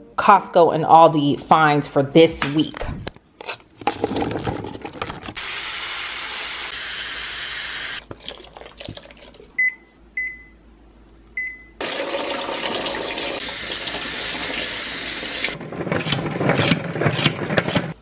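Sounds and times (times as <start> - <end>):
microwave keypad beeps: 9.6 - 10.6, 11.4 - 11.8.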